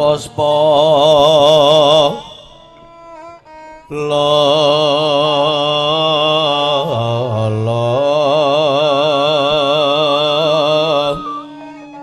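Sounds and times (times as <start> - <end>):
man singing a long note: 0.0 - 3.0, 3.8 - 12.0.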